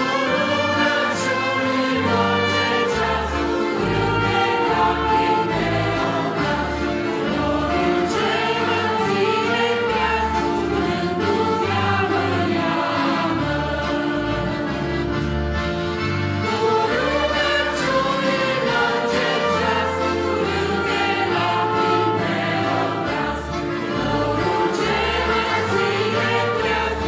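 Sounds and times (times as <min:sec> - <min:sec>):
voices singing in harmony: 0:00.0 - 0:15.5, 0:16.4 - 0:27.0
accordion: 0:00.0 - 0:27.0
keyboard: 0:00.0 - 0:27.0
saxophones: 0:00.0 - 0:27.0.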